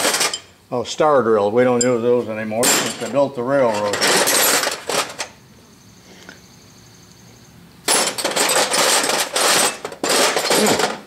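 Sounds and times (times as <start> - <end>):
hand tools clattering in toolbox: 0.0 - 0.5, 2.6 - 5.3, 7.9 - 11.0.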